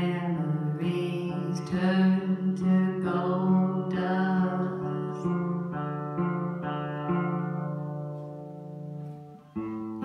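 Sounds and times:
woman singing: 0.0 - 7.7
amplified electric guitar: 0.0 - 10.0.

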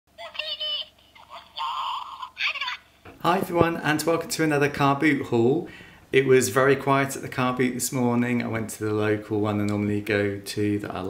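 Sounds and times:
squeaky high-pitched gibberish voice: 0.2 - 2.8.

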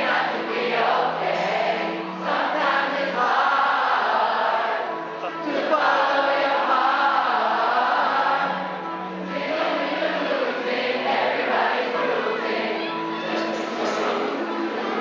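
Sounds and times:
concert crowd singing along: 0.0 - 15.0.

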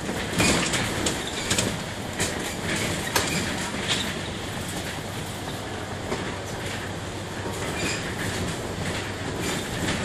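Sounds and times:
bodywork and windows rattling: 0.0 - 5.4
bus running and road noise: 0.0 - 10.0.

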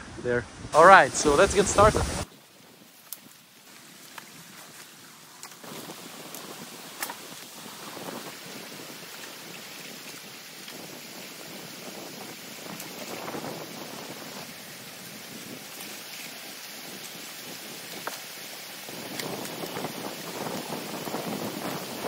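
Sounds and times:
water splashing and pouring: 0.9 - 22.0.

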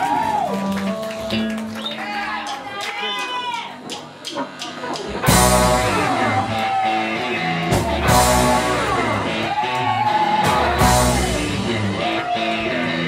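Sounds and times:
live rock band playing: 0.1 - 2.0, 5.0 - 13.0.

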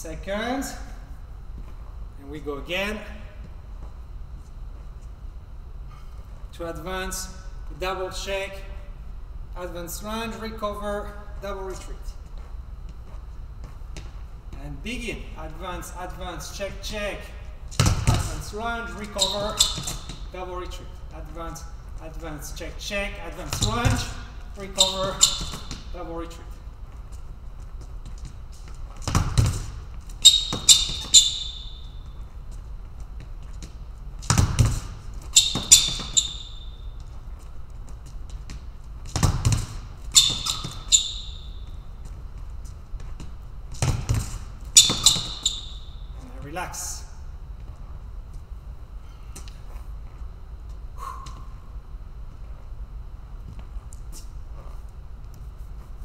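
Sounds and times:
high sneaker squeaks: 11.6 - 21.8, 22.4 - 46.4, 49.0 - 50.0, 51.0 - 51.7, 54.1 - 54.8
foot stamp on hall floor: 11.8 - 14.6, 23.3 - 26.0, 26.6 - 45.9.

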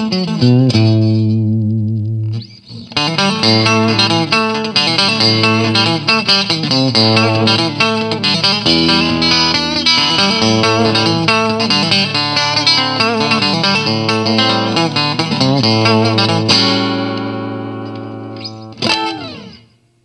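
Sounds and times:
electric guitar playing: 0.0 - 20.0.

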